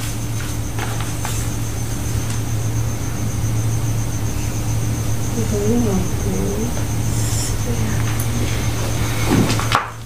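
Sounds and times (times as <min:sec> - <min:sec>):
steady low hum: 0:00.0 - 0:10.0
rapid pulsing high note: 0:02.6 - 0:09.1
person's wavering voice: 0:05.4 - 0:08.1.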